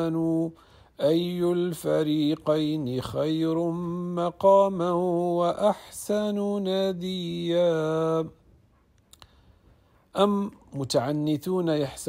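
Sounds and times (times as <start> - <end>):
man chanting recitation: 0.0 - 8.5, 10.0 - 12.0.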